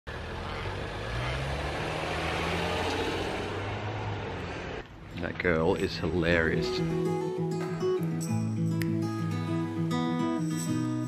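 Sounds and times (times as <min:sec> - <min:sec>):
car engine hum: 0:00.1 - 0:06.4
road and tyre noise: 0:00.1 - 0:07.9.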